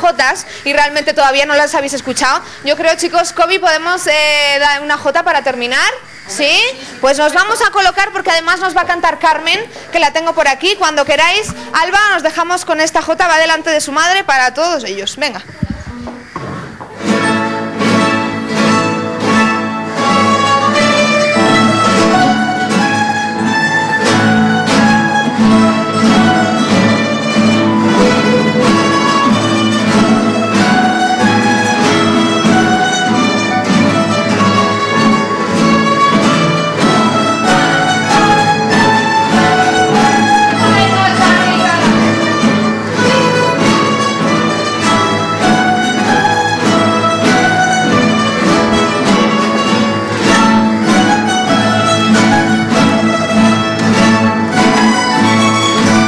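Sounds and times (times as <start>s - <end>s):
plucked string ensemble strumming: 16.9s - 56.0s.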